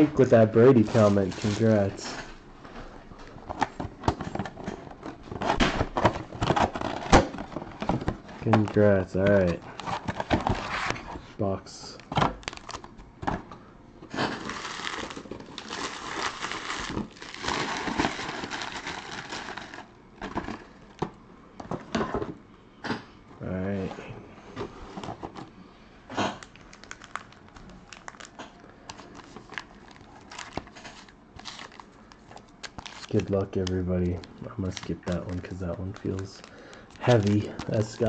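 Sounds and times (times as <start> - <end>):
plastic and foil packs crinkling: 0.1 - 2.3, 3.2 - 11.2, 11.9 - 13.1, 14.1 - 21.0, 26.2 - 38.0.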